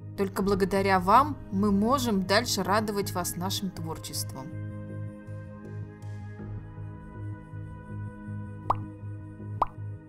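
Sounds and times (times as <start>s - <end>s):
background music with low pulse: 0.0s - 10.0s
rising pop sound effects: 8.6s - 8.9s.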